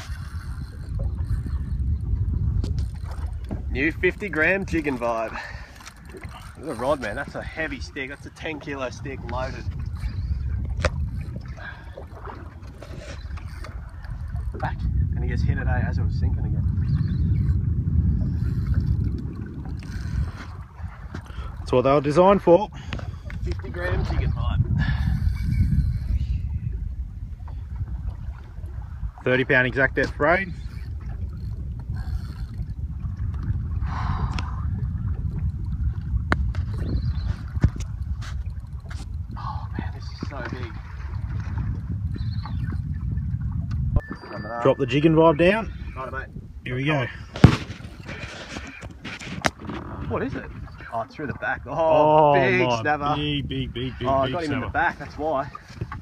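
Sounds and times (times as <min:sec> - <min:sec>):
boat rumbling: 0:00.0 - 0:56.0
wind on microphone: 0:00.0 - 0:56.0.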